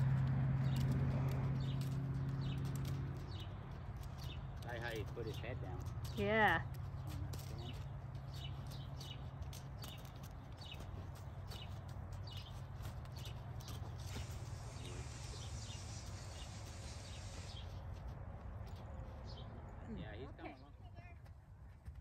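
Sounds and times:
hoofbeats on sand: 0.0s - 22.0s
bright hiss: 14.2s - 17.6s.

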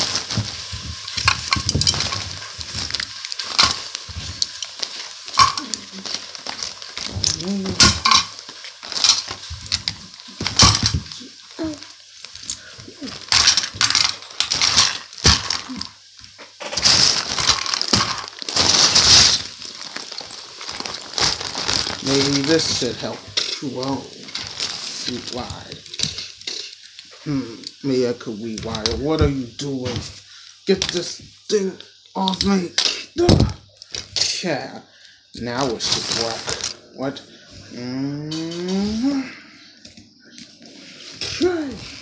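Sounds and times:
plastic toys clacking on table: 0.0s - 11.2s, 12.4s - 15.7s
hissing bursts: 0.0s - 37.6s.

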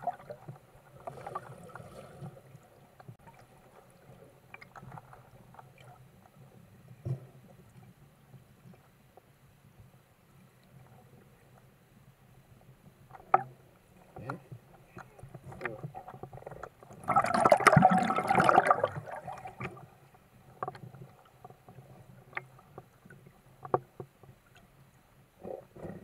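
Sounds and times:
churning water and bubbles: 0.0s - 6.0s, 13.2s - 24.6s.

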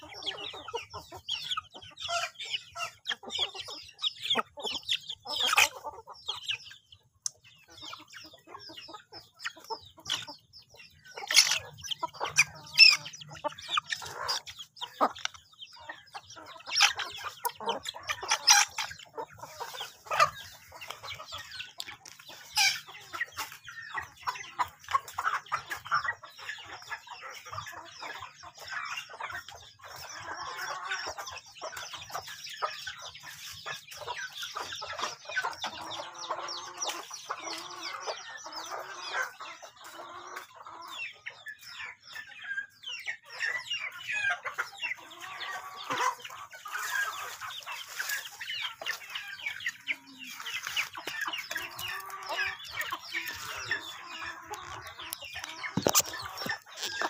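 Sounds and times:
chickens clucking: 0.0s - 57.0s.

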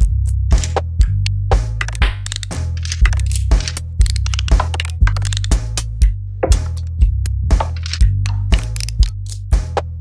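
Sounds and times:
deep bass line: 0.0s - 10.0s
electronic music: 0.0s - 10.0s
kick drum: 6.0s - 7.2s.

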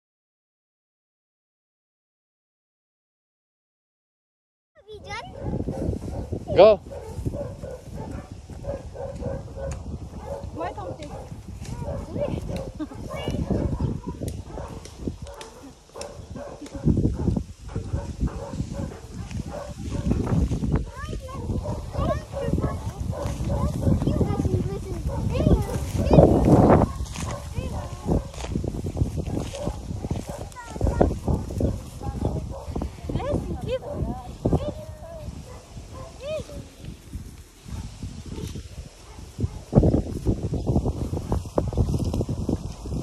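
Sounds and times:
people's voices: 10.4s - 17.0s, 20.9s - 28.5s, 30.1s - 37.0s
person laughing: 12.7s - 13.1s.

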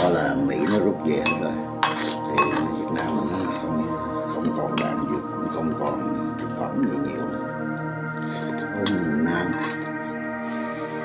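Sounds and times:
background music with held tones: 0.0s - 11.0s
utensils clinking on ceramic dishes: 0.6s - 3.6s.

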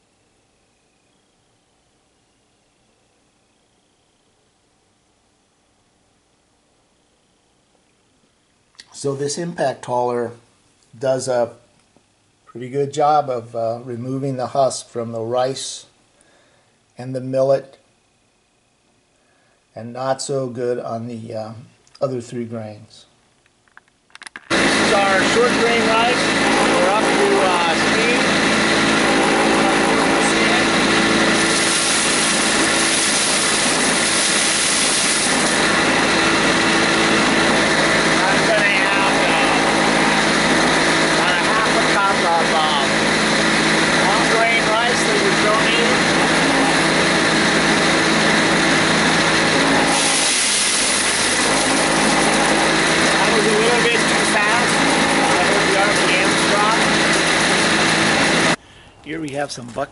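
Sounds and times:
rice hissing through machine: 24.5s - 58.6s
rice huller motor humming: 24.5s - 59.5s.

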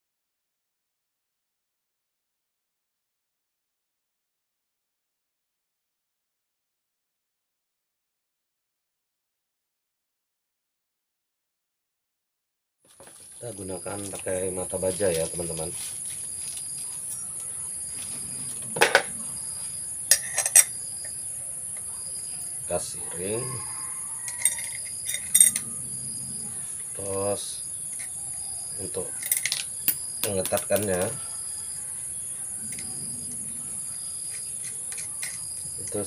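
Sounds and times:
insects chirping: 12.9s - 36.0s
metal parts clinking: 20.1s - 20.7s, 24.2s - 25.7s, 29.1s - 30.0s, 34.3s - 36.0s.

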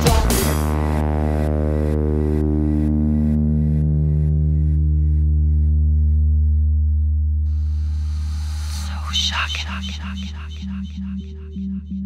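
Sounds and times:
low synth bass note: 0.7s - 12.0s.

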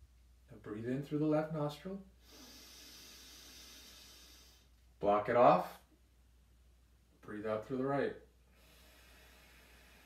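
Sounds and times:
man inhaling through nose: 2.2s - 4.8s, 8.5s - 10.0s.

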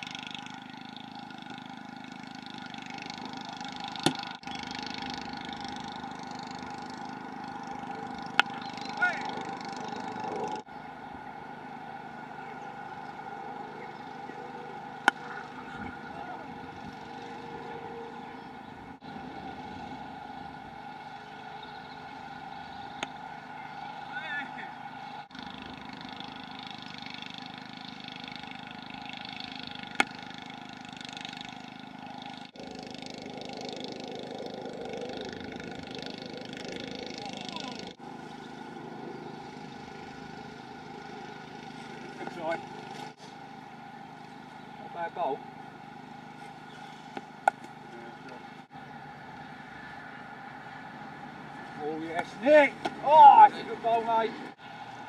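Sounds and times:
distant engine drone: 0.0s - 55.0s
cricket bat striking ball: 29.9s - 30.2s, 47.4s - 47.7s.

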